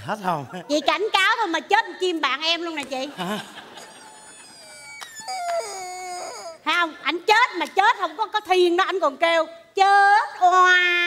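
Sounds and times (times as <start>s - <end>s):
long wailing cry: 3.8s - 6.6s.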